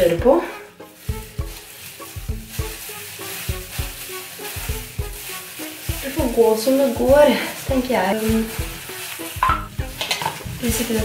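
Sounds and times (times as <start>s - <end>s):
background music with piano notes: 0.0s - 11.0s
plastic gloves crinkling: 0.0s - 11.0s.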